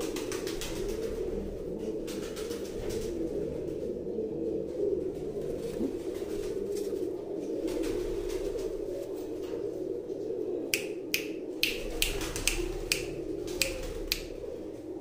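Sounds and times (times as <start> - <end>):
pigeons cooing: 0.0 - 15.0.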